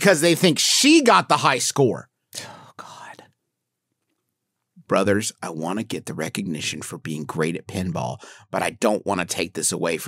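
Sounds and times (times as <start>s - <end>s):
person whispering: 2.4s - 3.3s.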